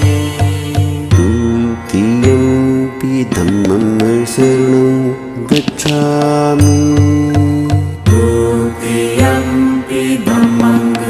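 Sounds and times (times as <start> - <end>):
chant-like music: 0.0 - 11.0.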